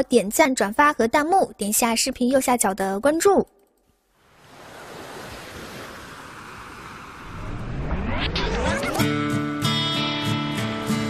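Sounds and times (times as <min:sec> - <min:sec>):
ocean surf washing: 0:04.1 - 0:08.2
music: 0:08.7 - 0:11.0.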